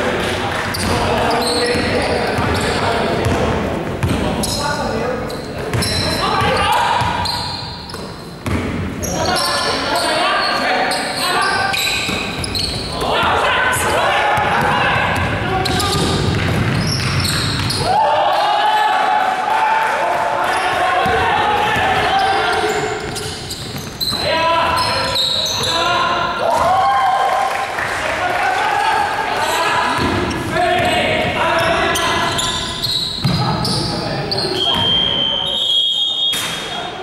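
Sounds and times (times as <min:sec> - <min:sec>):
players calling out: 0:09.0 - 0:27.3
basketball bouncing on hardwood floor: 0:14.4 - 0:17.8
steady high whistle tone: 0:34.5 - 0:36.5.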